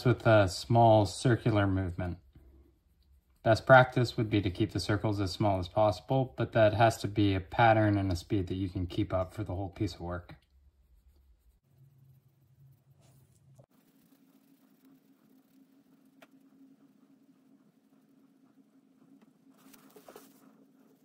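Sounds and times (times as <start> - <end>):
cotton swab scratching metal: 0.0 - 6.0, 6.6 - 21.0
low steady hum: 0.0 - 21.0.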